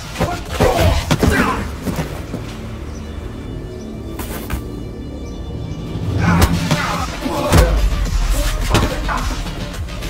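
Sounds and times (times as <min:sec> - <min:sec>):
music: 0:00.0 - 0:10.0
sharp hits: 0:05.9 - 0:09.8.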